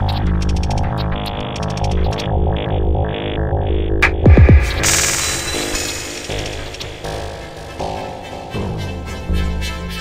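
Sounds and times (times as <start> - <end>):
pulsing synth bass: 1.0 - 7.9.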